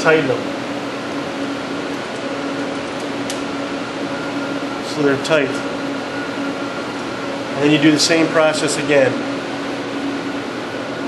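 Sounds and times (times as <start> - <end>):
mechanical hum: 0.0 - 11.0.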